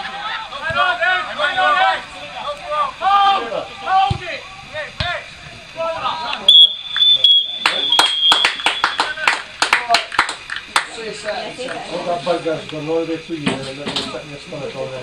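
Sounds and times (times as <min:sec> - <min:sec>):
scattered hand claps: 0:06.3 - 0:11.0
referee's whistle long blast: 0:06.5 - 0:09.2.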